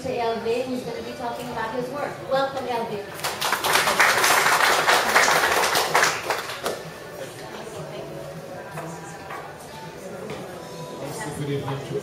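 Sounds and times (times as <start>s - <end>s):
audience applauding: 3.2s - 6.8s.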